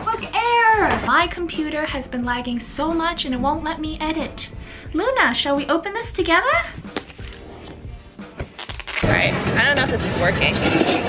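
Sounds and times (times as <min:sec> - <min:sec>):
plastic film crinkling: 0:06.9 - 0:07.6, 0:08.4 - 0:09.1.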